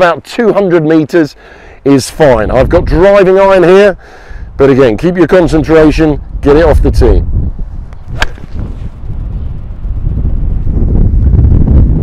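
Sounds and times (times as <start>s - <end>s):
wind rumbling on microphone: 2.0s - 12.0s
golf club striking ball: 7.9s - 8.7s.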